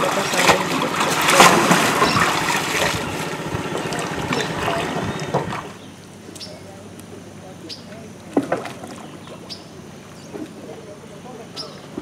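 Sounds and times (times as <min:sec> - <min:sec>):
water splashing and sloshing: 0:00.0 - 0:05.9, 0:08.0 - 0:12.0.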